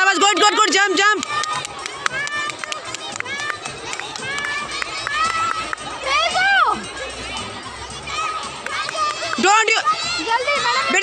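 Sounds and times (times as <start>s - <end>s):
children shouting: 0.6s - 11.0s.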